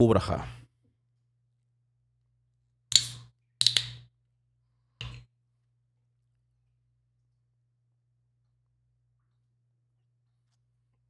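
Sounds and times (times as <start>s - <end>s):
bottle cap clicking open: 2.9s - 4.0s.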